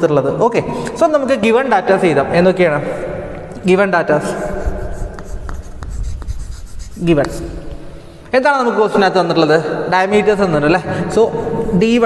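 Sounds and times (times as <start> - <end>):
chalk writing on chalkboard: 4.1 - 7.7.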